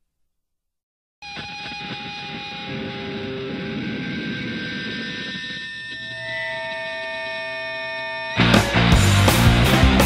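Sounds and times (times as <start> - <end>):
droning song with held tones: 1.2 - 10.0.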